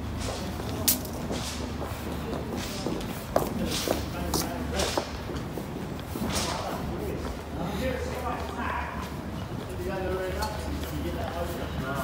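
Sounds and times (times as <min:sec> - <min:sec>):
footsteps on stone paving: 0:00.1 - 0:09.8.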